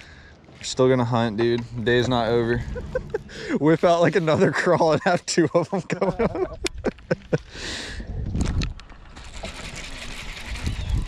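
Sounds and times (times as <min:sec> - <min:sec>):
wind rumble on microphone: 0:01.7 - 0:03.5, 0:06.1 - 0:09.0, 0:09.8 - 0:11.0
fishing reel whirring: 0:09.2 - 0:11.0.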